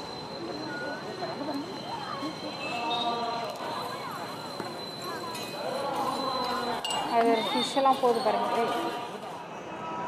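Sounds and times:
people talking and calling: 0.0 - 10.0.

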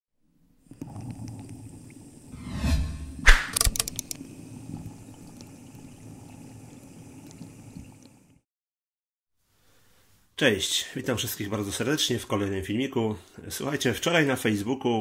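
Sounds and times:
low drone: 2.4 - 3.6
sharp hit: 2.4 - 3.7.

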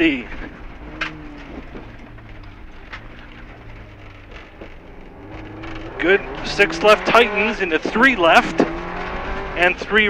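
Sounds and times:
rally car engine at speed: 0.0 - 10.0
tyres on loose gravel: 0.0 - 10.0.

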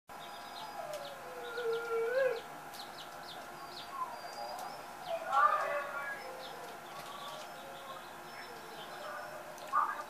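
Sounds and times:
small birds chirping: 0.1 - 10.0.

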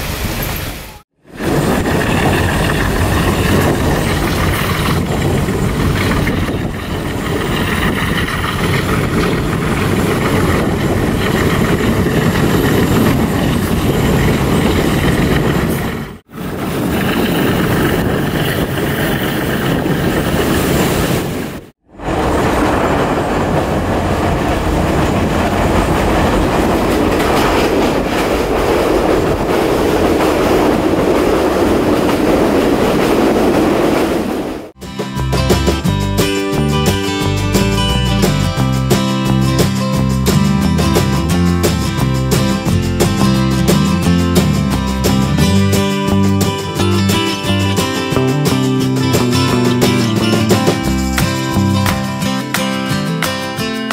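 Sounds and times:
train running on rails: 0.0 - 53.9.

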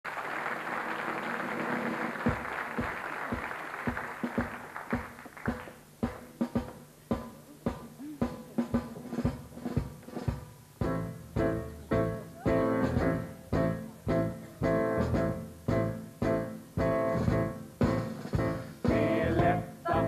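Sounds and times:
audience applause: 0.0 - 6.0
drum kit march beat: 1.1 - 20.0.

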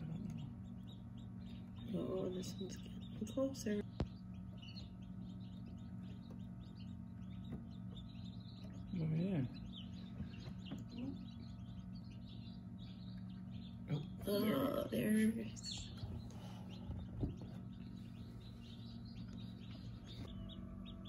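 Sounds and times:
chicks peeping: 0.0 - 21.0
low hum: 0.0 - 21.0
person's voice: 14.0 - 15.8.

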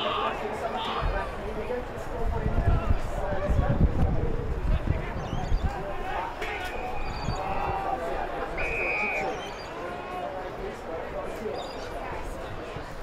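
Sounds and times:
people calling out: 0.0 - 1.4.

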